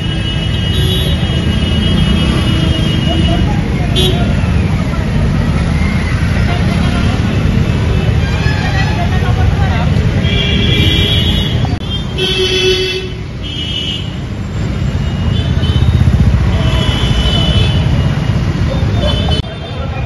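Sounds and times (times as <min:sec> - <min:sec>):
road traffic rumble: 0:00.0 - 0:20.0
people's voices: 0:01.2 - 0:12.2, 0:16.4 - 0:20.0.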